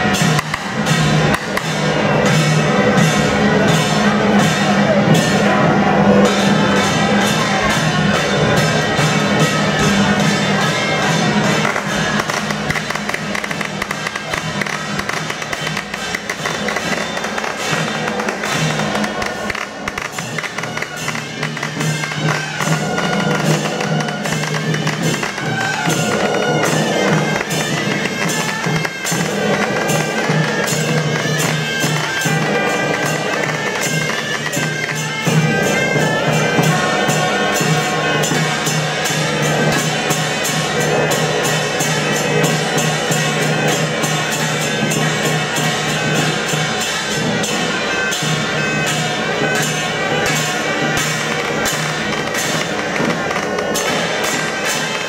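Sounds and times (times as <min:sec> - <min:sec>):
cymbals and drum beat: 0:00.0 - 0:55.0
suona horns playing melody: 0:05.1 - 0:55.0.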